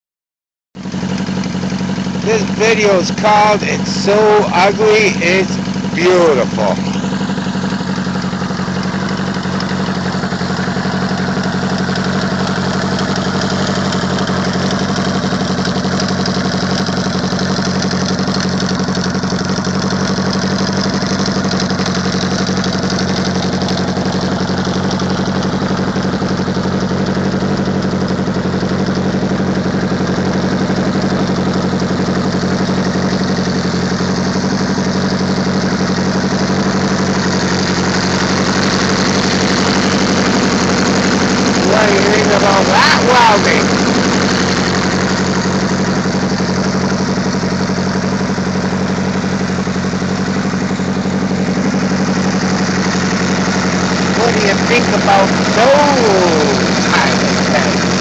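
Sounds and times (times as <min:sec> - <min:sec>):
motorcycle engine idling: 0:00.8 - 0:58.0.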